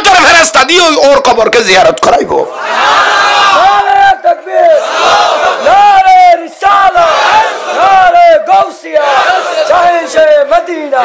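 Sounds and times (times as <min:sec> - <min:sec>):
crowd of men chanting: 0:02.6 - 0:03.9, 0:04.7 - 0:10.2.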